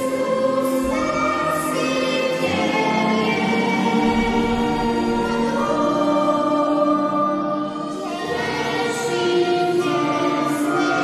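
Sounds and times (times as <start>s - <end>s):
choir singing: 0.0s - 11.0s
violins: 0.0s - 11.0s.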